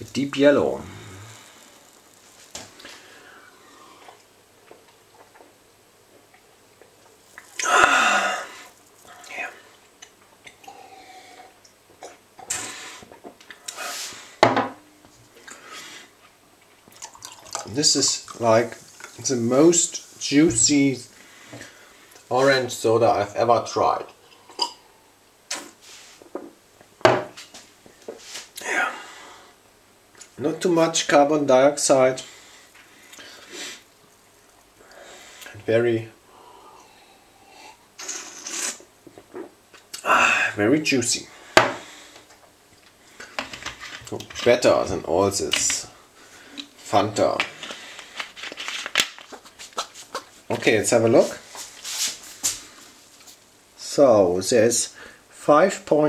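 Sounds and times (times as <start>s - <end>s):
person humming: 0.8s - 1.5s, 7.6s - 9.3s
breathy mouth noises: 10.4s - 14.1s
person slurping soda: 36.8s - 38.9s.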